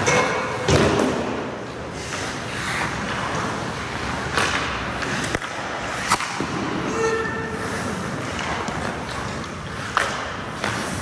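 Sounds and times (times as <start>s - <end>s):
skates scraping ice: 0.0s - 11.0s
hockey pucks cracking: 2.1s - 6.8s, 7.9s - 11.0s.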